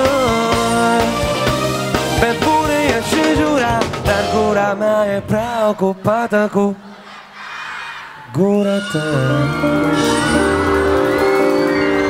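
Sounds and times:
drum kit hits: 0.0 - 5.7
gliding melody line: 9.4 - 12.0.

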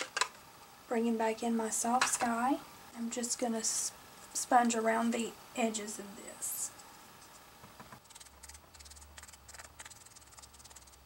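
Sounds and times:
sponge dabbing on paper: 6.7 - 11.0.

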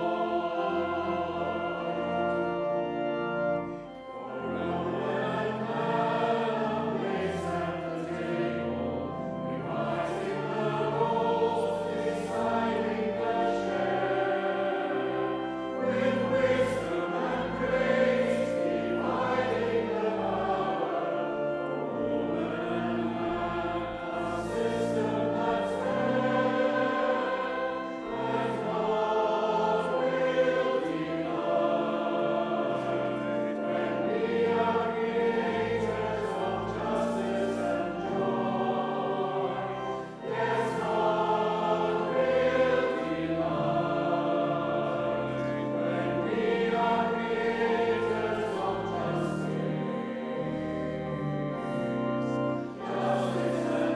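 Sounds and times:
church choir singing: 0.0 - 53.9
pipe organ low notes: 0.0 - 53.9.

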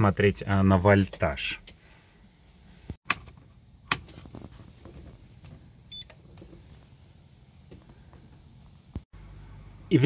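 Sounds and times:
low steady hum: 1.8 - 10.0.

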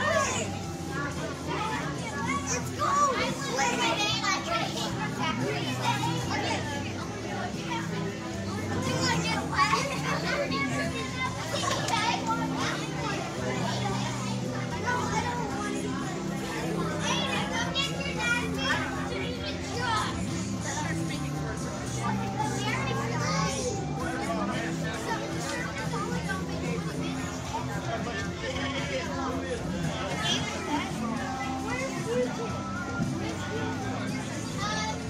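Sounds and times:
children shouting and squealing: 0.0 - 35.0
music playing: 0.0 - 35.0.

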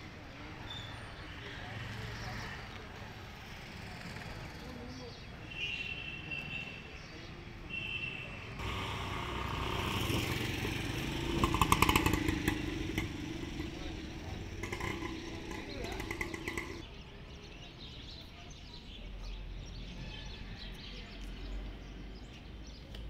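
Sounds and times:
motorcycle passing: 8.6 - 16.9.

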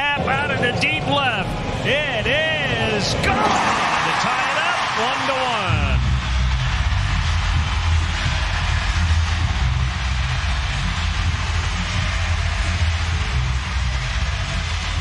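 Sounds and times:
stadium crowd noise: 0.0 - 15.0
deep continuous rumble: 6.0 - 15.0.

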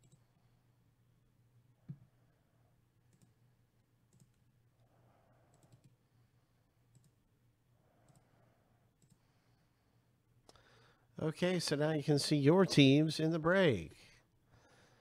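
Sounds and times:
computer mouse clicks: 0.0 - 0.3, 3.1 - 3.4, 4.1 - 4.4, 5.5 - 6.0, 6.9 - 7.2, 8.0 - 8.3, 9.0 - 9.3.

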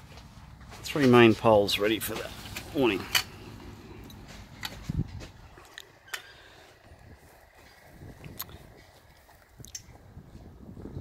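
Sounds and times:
wind rumble on microphone: 4.1 - 5.6, 6.8 - 11.0.

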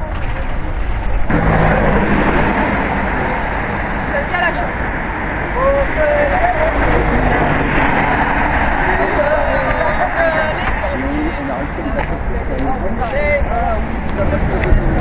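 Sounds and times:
people talking: 0.0 - 4.9, 5.5 - 15.0
road traffic rushing: 0.0 - 15.0.

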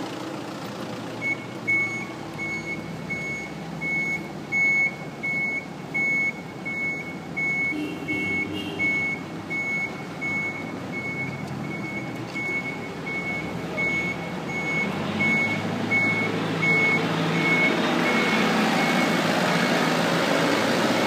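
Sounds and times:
vehicle rumble: 0.0 - 21.0
reversing alarm beeping: 1.2 - 19.9.

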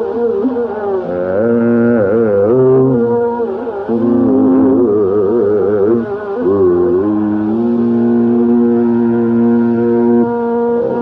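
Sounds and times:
classical vocal melody: 0.0 - 11.0.

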